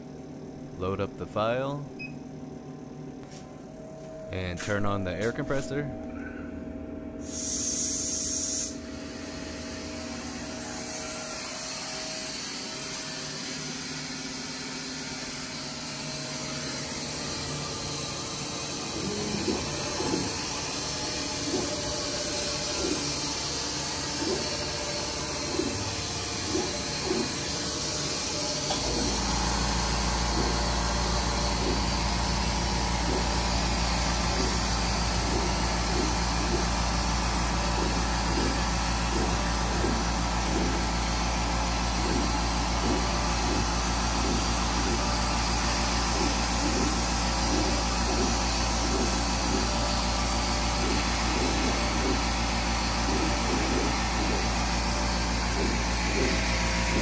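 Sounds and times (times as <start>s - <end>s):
air compressor running: 0.0s - 5.4s, 6.1s - 57.0s
deep steady hum: 0.0s - 11.4s
exhaust fan running: 0.0s - 57.0s.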